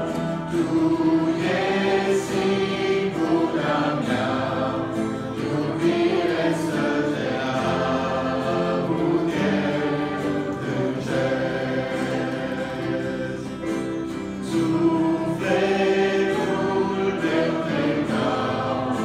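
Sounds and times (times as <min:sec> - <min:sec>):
youth choir singing: 0:00.0 - 0:19.0.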